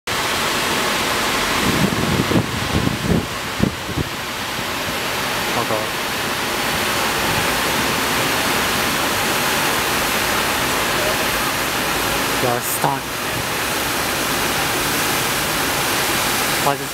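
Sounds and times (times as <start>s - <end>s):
loud rushing noise: 0.1s - 16.9s.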